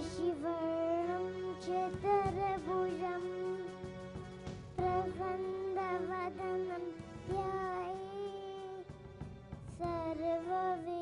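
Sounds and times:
girl singing into a microphone: 0.0 - 3.7, 4.8 - 8.9, 9.7 - 11.0.

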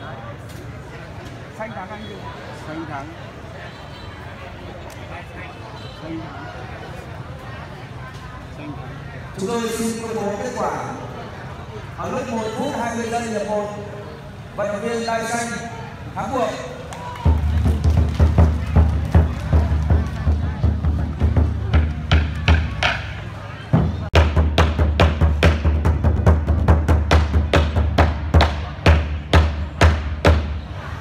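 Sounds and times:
barrel drum beaten with sticks: 19.5 - 30.6.

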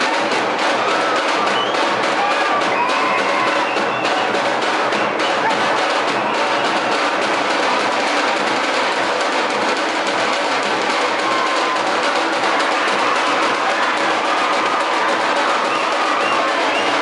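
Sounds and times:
music with rapid drumming: 0.0 - 17.0.

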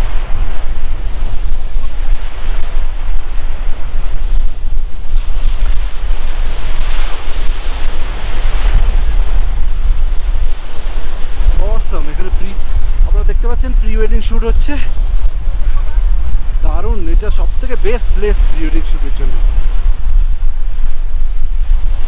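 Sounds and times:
small waves washing on shore: 0.0 - 22.0
wind buffeting microphone: 0.0 - 22.0.

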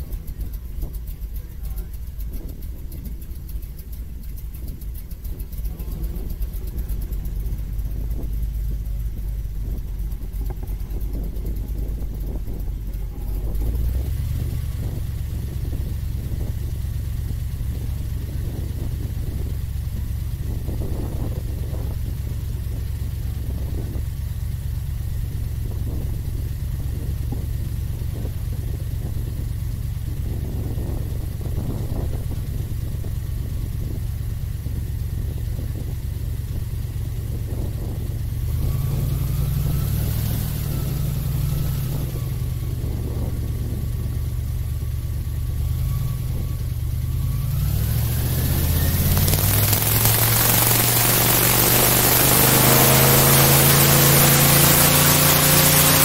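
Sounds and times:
airboat engine and propeller: 0.0 - 56.0.

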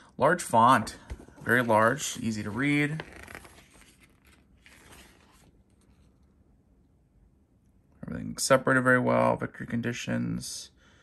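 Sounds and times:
paper pages turning: 1.1 - 6.3.

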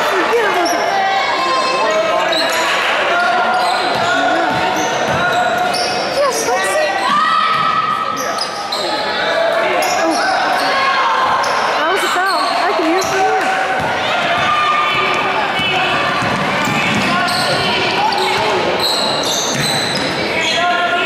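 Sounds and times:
sneakers squeaking on hardwood: 3.5 - 6.2, 11.4 - 20.6
basketball bouncing: 12.9 - 18.6, 19.5 - 20.2.

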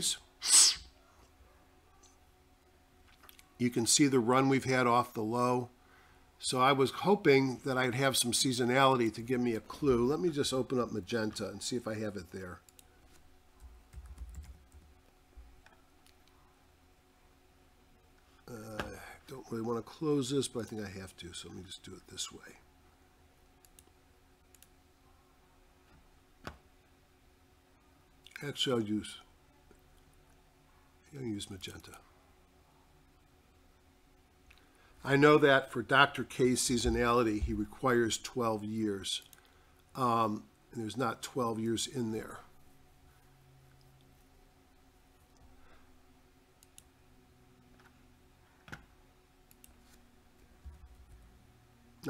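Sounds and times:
loud burst of breath: 0.4 - 0.9
computer mouse clicks: 46.6 - 46.9.

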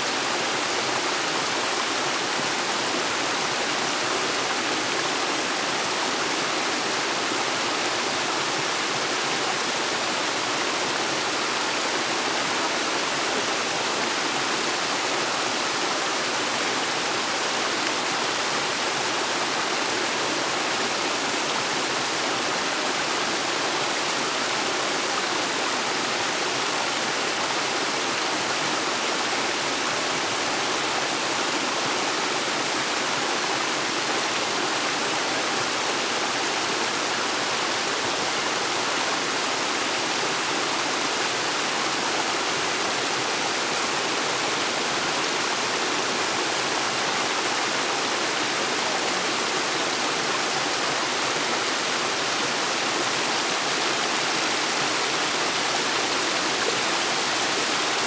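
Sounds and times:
small waterfall splashing: 0.0 - 58.0.

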